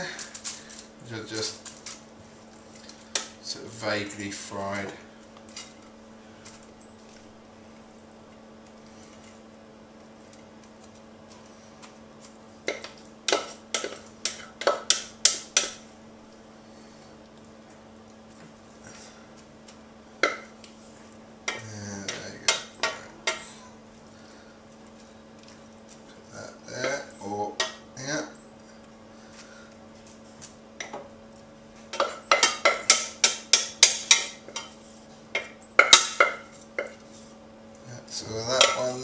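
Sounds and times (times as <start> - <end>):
wooden spoon knocking on saucepan: 31.9 - 34.7.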